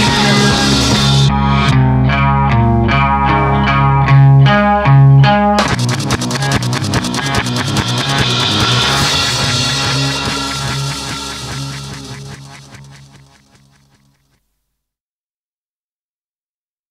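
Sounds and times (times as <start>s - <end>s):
rock band playing: 0.0s - 13.9s
low bass notes: 0.0s - 14.1s
picked guitar notes: 0.0s - 14.1s.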